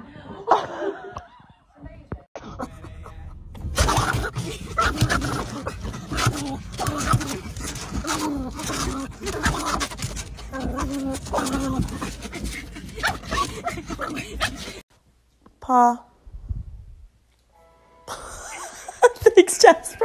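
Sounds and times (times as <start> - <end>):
person laughing: 2.4 - 5.9, 18.1 - 19.8
dog whining and yelping: 3.8 - 14.8.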